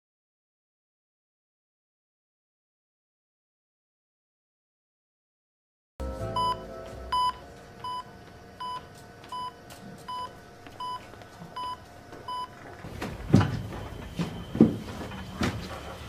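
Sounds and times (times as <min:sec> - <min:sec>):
electronic beeper beeping: 0:06.3 - 0:08.8.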